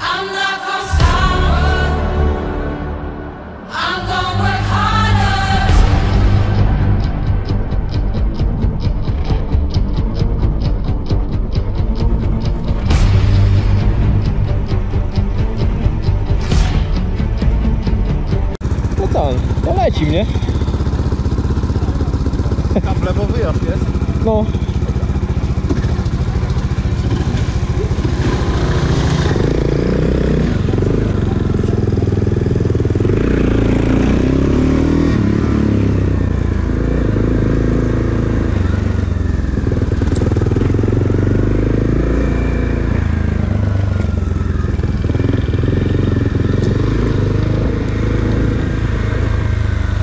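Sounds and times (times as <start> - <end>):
motorcycle engine revving: 4.0 - 50.0.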